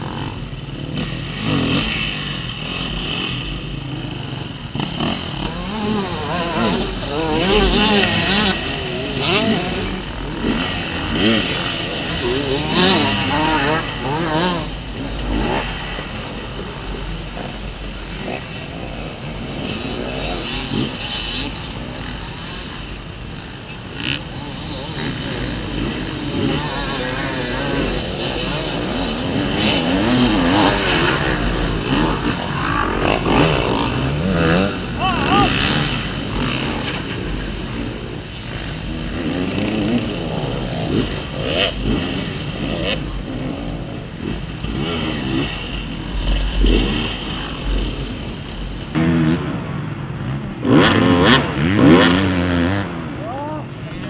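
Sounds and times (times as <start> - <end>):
dirt bike engine revving: 0.0 - 54.0
second dirt bike revving: 0.0 - 54.0.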